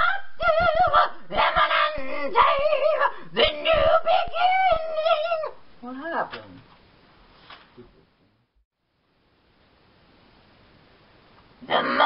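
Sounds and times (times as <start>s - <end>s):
woman singing with vibrato: 0.0s - 5.2s.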